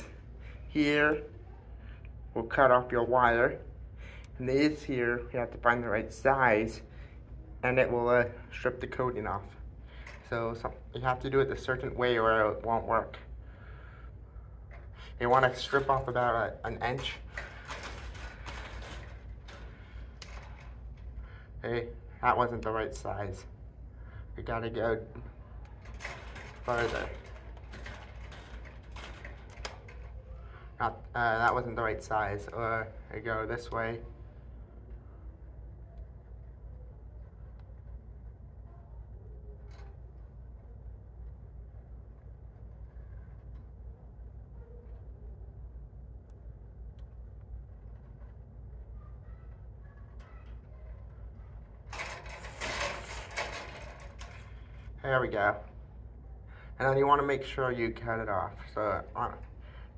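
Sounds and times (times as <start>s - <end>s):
steady low hum: 0.0s - 59.9s
wire strippers clicking and scraping: 9.4s - 12.7s, 14.6s - 23.5s, 24.5s - 32.9s, 46.9s - 55.8s.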